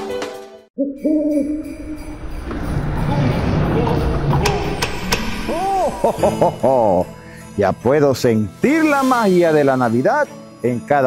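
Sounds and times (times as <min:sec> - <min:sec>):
owl hooting: 0:00.8 - 0:01.7
jingle music: 0:01.1 - 0:11.0.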